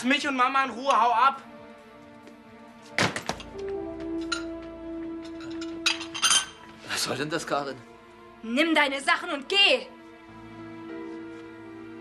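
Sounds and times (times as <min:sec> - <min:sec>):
soft background music: 0:00.0 - 0:12.0
suitcases set down on floor: 0:02.9 - 0:04.4.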